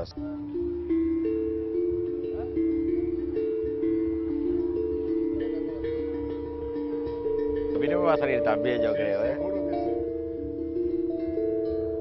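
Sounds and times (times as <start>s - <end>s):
steel tongue drum melody: 0.0s - 12.0s.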